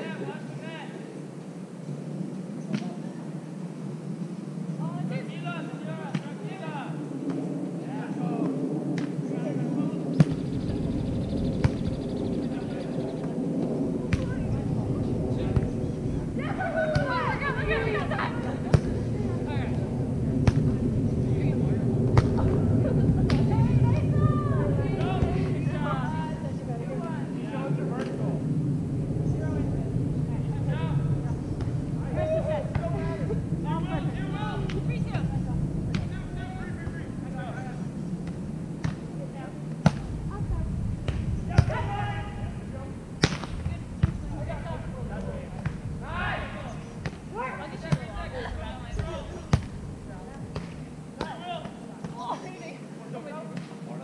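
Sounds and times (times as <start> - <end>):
players calling and talking: 0.0 - 54.0.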